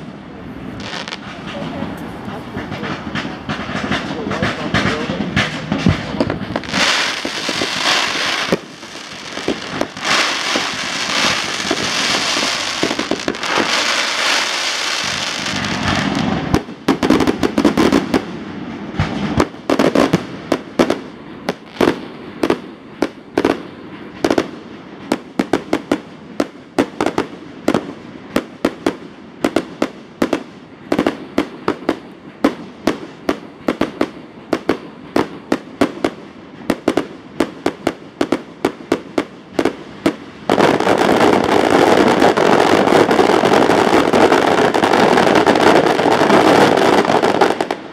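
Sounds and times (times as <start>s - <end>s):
fireworks bursting bangs: 0.0s - 47.9s
fireworks crackling hiss: 0.0s - 47.9s.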